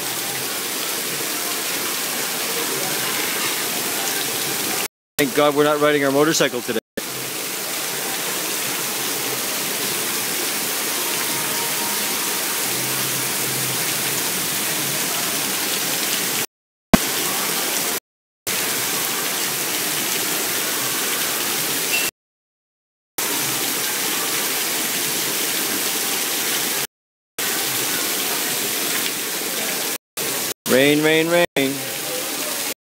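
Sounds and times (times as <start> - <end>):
heavy rain pouring: 0.0 - 22.0, 23.2 - 32.8.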